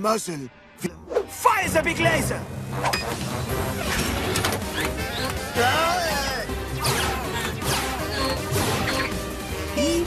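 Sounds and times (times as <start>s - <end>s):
cartoon background music: 0.0s - 10.0s.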